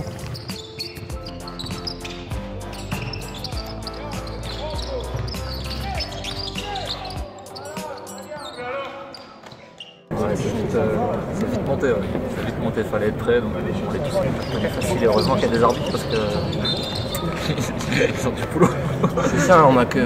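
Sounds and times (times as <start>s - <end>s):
basketballs bouncing: 0.0s - 9.7s
sneakers squeaking on hardwood: 0.0s - 10.1s, 13.9s - 17.9s
background music: 0.0s - 13.8s
players' voices: 1.5s - 20.0s.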